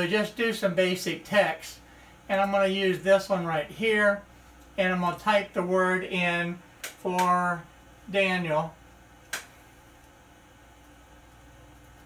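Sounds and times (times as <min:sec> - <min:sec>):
faint room hum: 0:00.0 - 0:12.0
sharp click: 0:06.8 - 0:07.3, 0:09.3 - 0:09.6.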